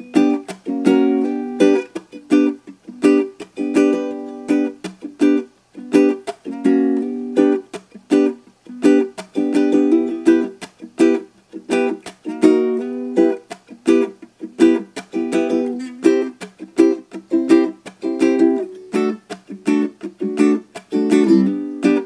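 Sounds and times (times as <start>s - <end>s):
ukulele strumming: 0.0s - 22.0s.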